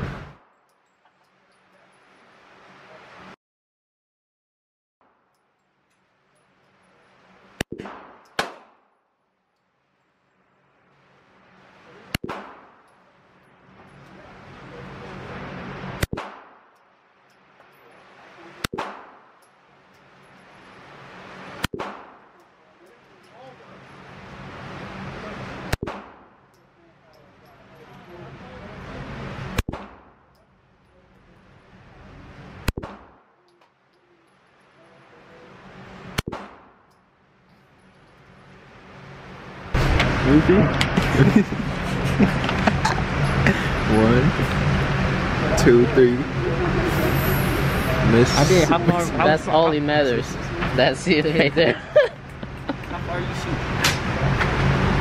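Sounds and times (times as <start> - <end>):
handgun shots echoing: 7.6 - 8.9, 12.2 - 12.8, 18.6 - 19.3, 21.6 - 22.2
steady hum: 9.8 - 55.0.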